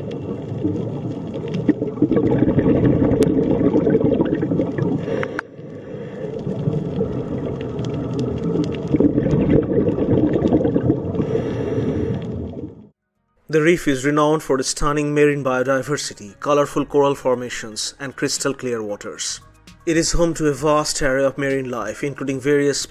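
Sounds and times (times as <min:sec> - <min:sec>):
muffled underwater water rumble: 0:00.0 - 0:12.9.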